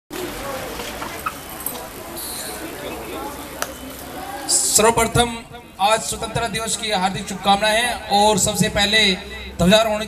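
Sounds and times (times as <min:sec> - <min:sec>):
indistinct chatter of voices: 0:00.1 - 0:10.0.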